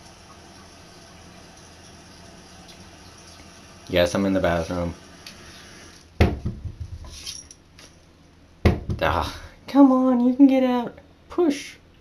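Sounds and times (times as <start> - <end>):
cabinet door knocking and rattling: 6.2 - 7.0, 8.6 - 9.1.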